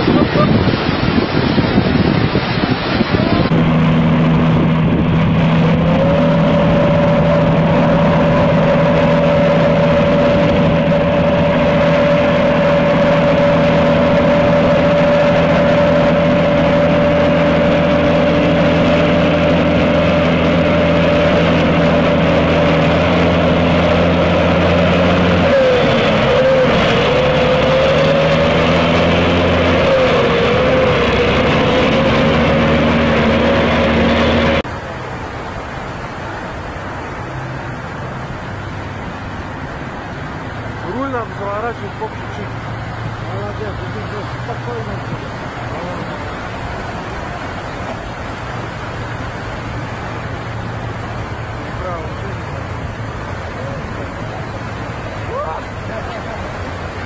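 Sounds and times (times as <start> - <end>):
rushing water: 0.0 - 57.0
truck engine running hard: 0.0 - 57.0.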